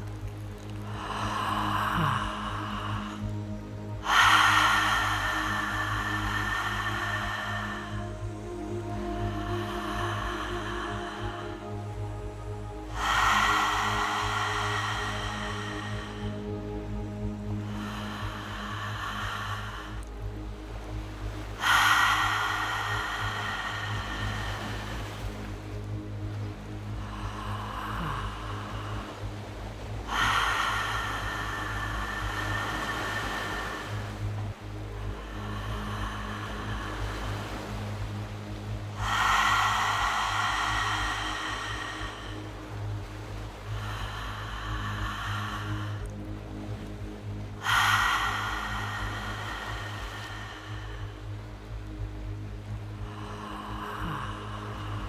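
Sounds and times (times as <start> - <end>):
soft background music: 0.0 - 55.0
woman breathing deeply: 0.0 - 55.0.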